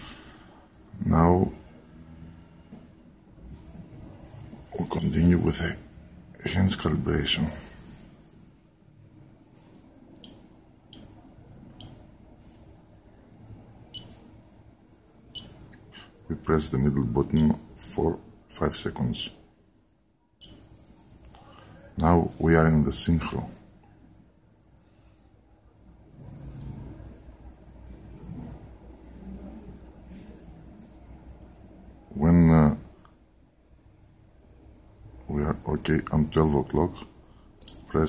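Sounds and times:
watch button clicks: 0:15.4 - 0:15.6.

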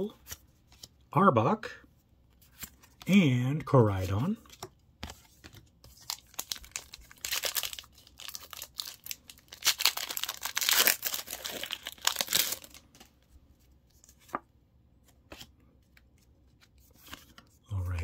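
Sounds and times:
foil wrapper crinkling and tearing: 0:06.0 - 0:12.8.

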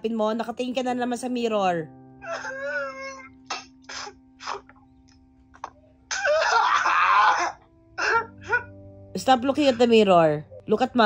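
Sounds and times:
boy crying: 0:02.2 - 0:03.4, 0:06.1 - 0:08.7
gasping sobs: 0:02.2 - 0:04.7, 0:06.1 - 0:08.7.

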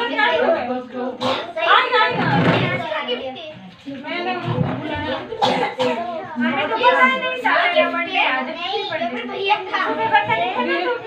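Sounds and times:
children and women talking: 0:00.0 - 0:11.0.

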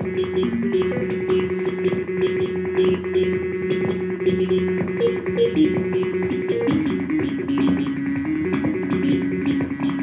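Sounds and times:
fast plucked electronic pattern: 0:00.0 - 0:10.0.

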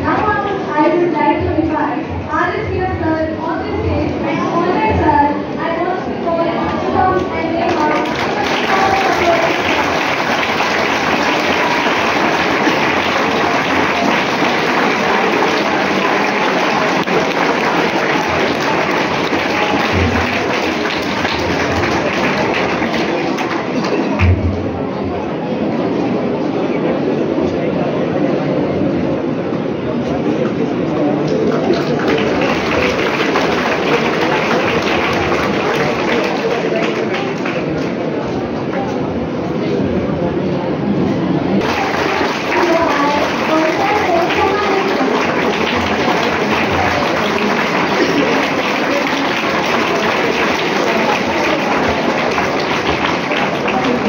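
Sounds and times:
crowd chatter: 0:00.0 - 0:54.0
large audience applause: 0:07.5 - 0:24.3, 0:31.2 - 0:38.3, 0:41.6 - 0:54.0.

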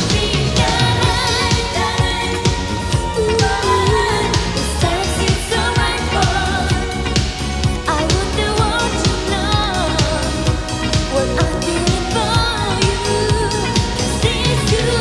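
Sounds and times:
full band playing: 0:00.0 - 0:15.0
steady drum beat: 0:00.0 - 0:15.0
woman singing with vibrato: 0:00.0 - 0:15.0.

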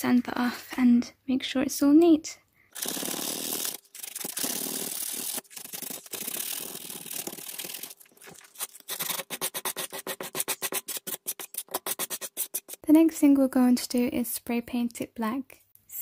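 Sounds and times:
sandpaper rubbing on board: 0:02.8 - 0:12.8.

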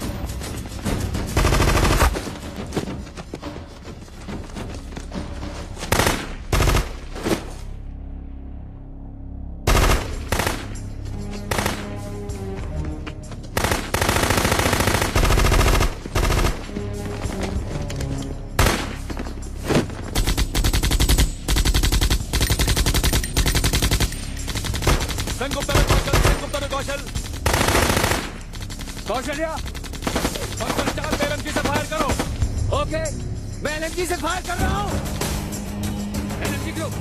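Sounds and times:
machine-gun fire: 0:01.3 - 0:02.3, 0:05.9 - 0:07.0, 0:09.7 - 0:10.8, 0:13.6 - 0:16.6, 0:20.2 - 0:26.6, 0:27.3 - 0:29.2.

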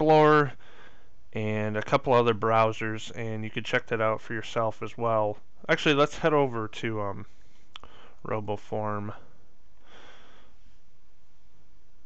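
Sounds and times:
man breathing in through nose: 0:00.6 - 0:01.2, 0:07.4 - 0:08.2, 0:09.8 - 0:10.8.

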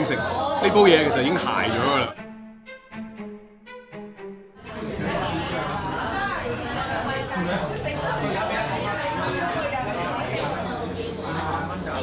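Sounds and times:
restaurant crowd chatter: 0:00.0 - 0:02.2, 0:04.6 - 0:12.0.

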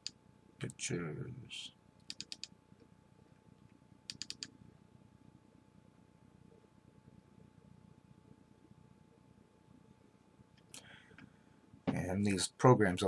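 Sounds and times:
computer mouse clicks: 0:02.0 - 0:02.5, 0:04.1 - 0:04.5.

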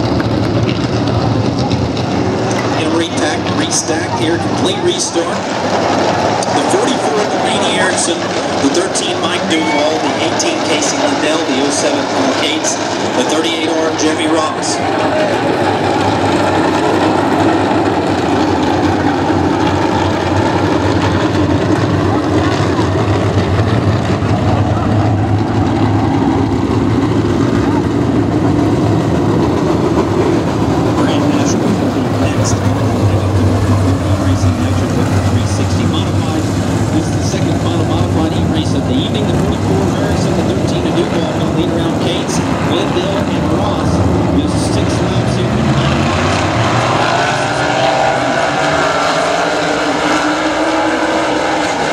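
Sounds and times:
race car engines rumbling: 0:00.0 - 0:51.9.

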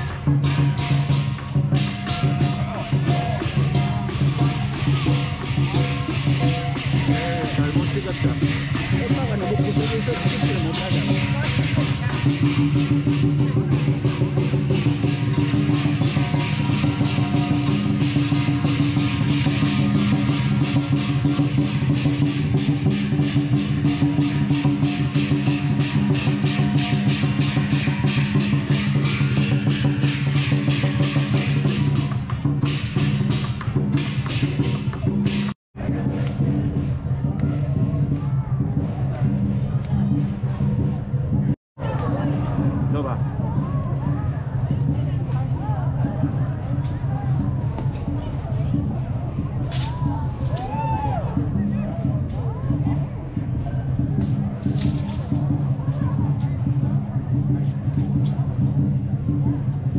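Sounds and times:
hand cymbals clashing: 0:00.0 - 0:35.6
large drum beating fast: 0:00.0 - 0:59.9.

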